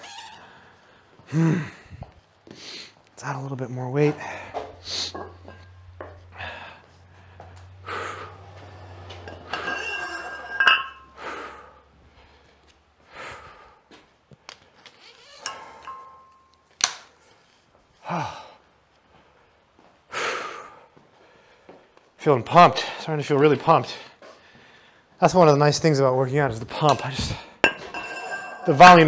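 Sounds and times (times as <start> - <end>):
man breathing heavily: 0.4 - 3.0, 4.1 - 9.1, 11.0 - 14.8, 18.0 - 22.1, 24.0 - 25.2
weight plates clinking and knocking: 5.0 - 6.2, 9.1 - 11.2, 15.4 - 16.5, 26.8 - 29.0.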